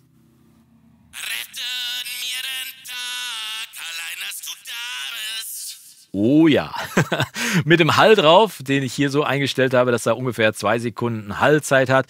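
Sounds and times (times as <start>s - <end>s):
distorted singing voice: 1.0s - 6.5s.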